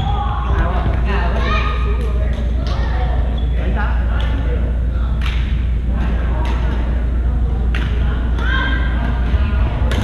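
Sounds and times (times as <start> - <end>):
steady low rumble: 0.0 - 10.0.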